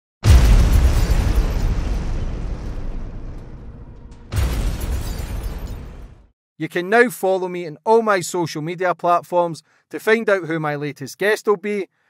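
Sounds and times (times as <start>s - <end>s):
deep rumble: 0.2s - 6.2s
explosion blast: 0.2s - 6.3s.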